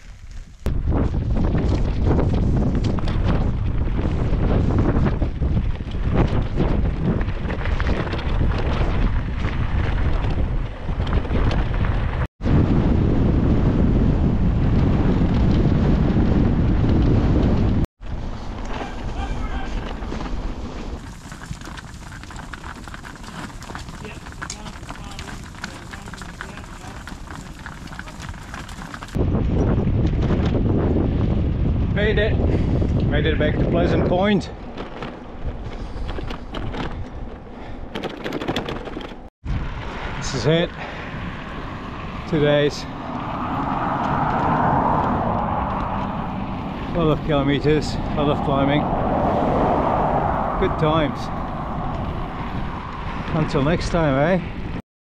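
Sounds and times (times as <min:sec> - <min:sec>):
wind buffeting microphone: 0:00.0 - 0:54.8.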